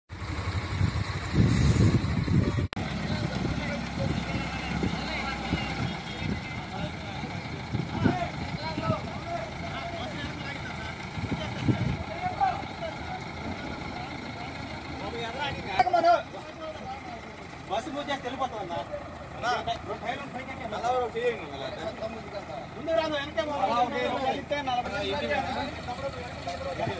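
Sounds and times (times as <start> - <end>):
vehicle rumble: 0.1 - 26.9
people talking: 2.4 - 26.9.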